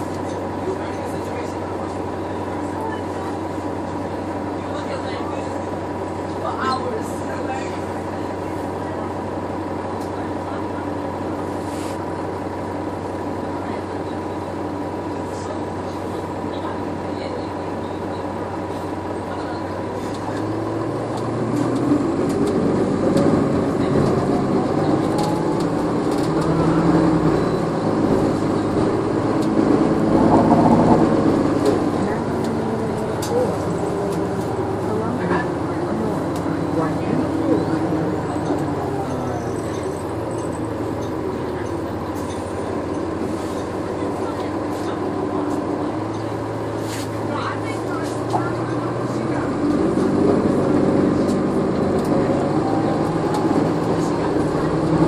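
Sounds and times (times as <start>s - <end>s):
bus drivetrain whine and engine: 0.0s - 55.0s
passenger voices murmuring: 0.0s - 55.0s.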